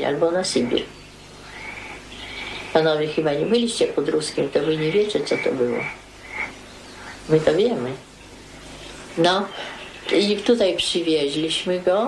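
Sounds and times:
elderly woman speaking: 0.0s - 0.9s, 2.7s - 6.0s, 7.3s - 8.1s, 9.2s - 12.0s.

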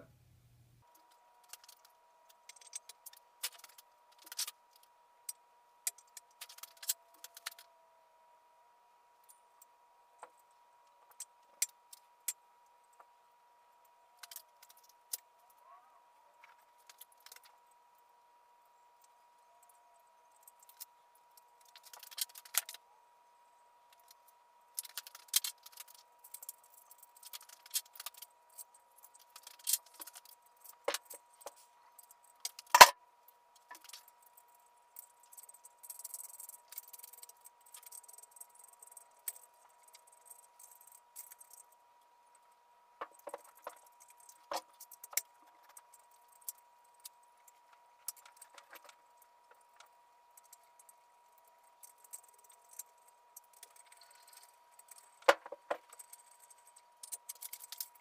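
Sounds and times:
faint steady tone: 0.0s - 58.0s.

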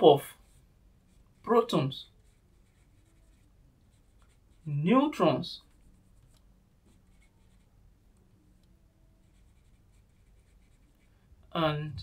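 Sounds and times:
marker pen scratching whiteboard: 0.0s - 7.8s, 9.2s - 11.1s.

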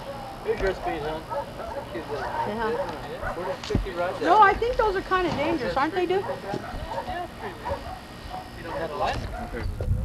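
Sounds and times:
indistinct voices talking: 0.0s - 9.7s.

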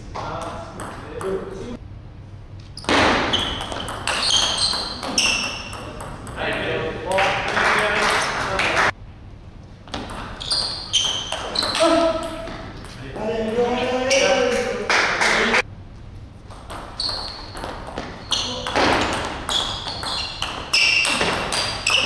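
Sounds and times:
table tennis ball pings: 2.9s - 6.7s, 16.6s - 22.0s
voices: 11.6s - 15.6s.

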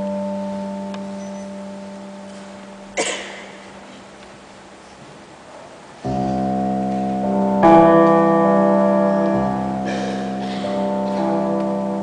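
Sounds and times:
electronic piano chord: 0.0s - 3.8s, 6.0s - 12.0s.

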